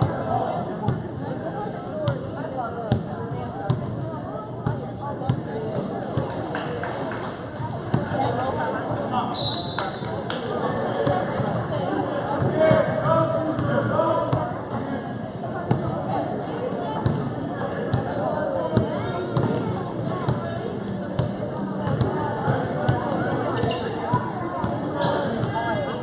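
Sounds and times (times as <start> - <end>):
voices of players and spectators: 0.0 - 26.0.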